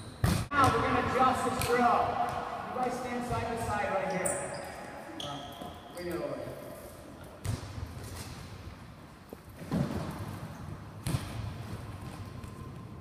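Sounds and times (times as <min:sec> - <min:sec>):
hall echo: 0:00.5 - 0:06.8.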